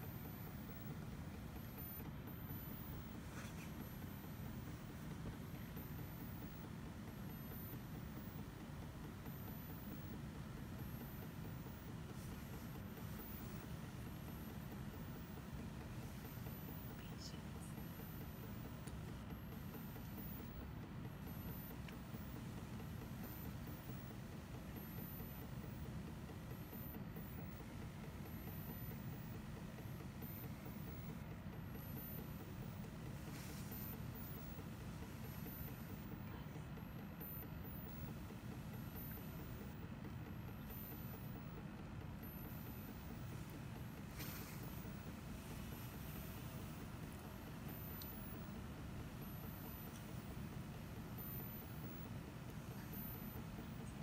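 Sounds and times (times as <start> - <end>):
faint steady whine: 0.0 - 54.0.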